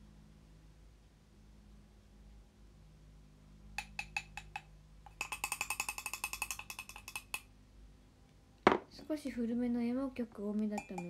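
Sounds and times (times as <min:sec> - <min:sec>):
spoon clinking in ceramic mug: 0:03.8 - 0:07.4, 0:10.7 - 0:11.0.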